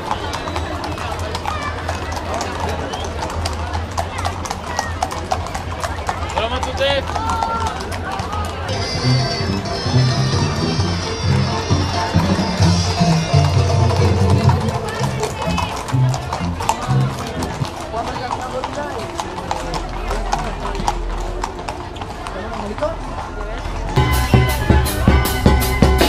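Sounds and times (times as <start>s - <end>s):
crowd voices: 0.0s - 26.0s
horse hooves clopping on pavement: 0.0s - 26.0s
music with deep bass: 24.0s - 26.0s.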